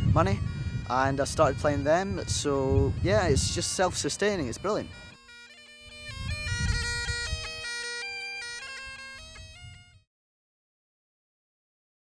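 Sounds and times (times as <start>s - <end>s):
bagpipes playing a tune: 0.0s - 10.1s.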